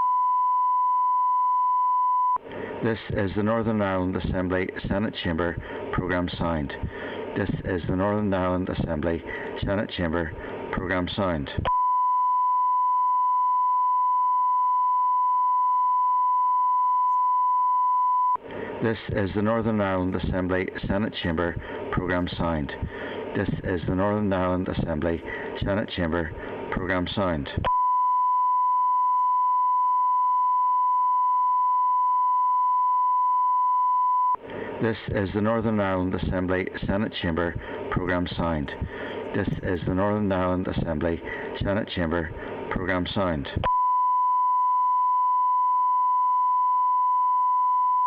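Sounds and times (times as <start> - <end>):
steady test tone beep: 0.0 - 2.4, 11.7 - 18.4, 27.6 - 34.4, 43.6 - 48.0.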